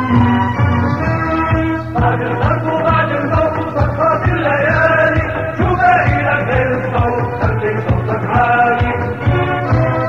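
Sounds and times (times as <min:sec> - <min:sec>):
sung melody over drum beats: 0:00.0 - 0:10.0.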